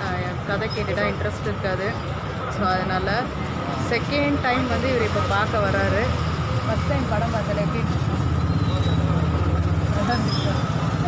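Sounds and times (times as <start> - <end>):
busy street noise: 0.0 - 11.0.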